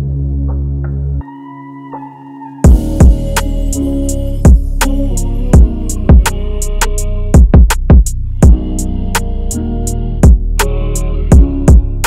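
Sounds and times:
sustained sampled chords: 0.0s - 12.0s
heavy kick drum: 2.7s - 3.4s, 4.4s - 4.8s, 5.6s - 6.3s, 7.4s - 8.8s, 10.2s - 10.5s, 11.3s - 11.9s
deep bass note: 2.7s - 12.0s
hi-hats ticking: 2.7s - 12.0s.

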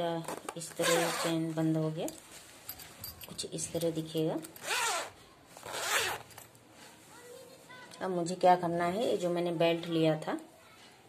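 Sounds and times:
zipper rasp on fabric purse: 0.7s - 1.4s, 4.6s - 6.3s.

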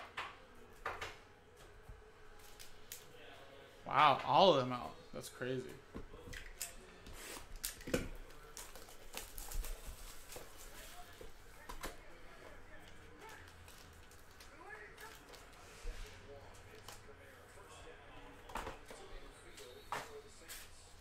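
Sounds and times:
foil packs handled: 7.5s - 11.7s.

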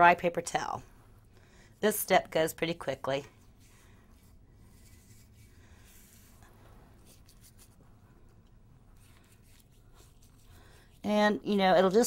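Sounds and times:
paintbrush swishing: 3.4s - 8.1s, 8.8s - 11.1s.

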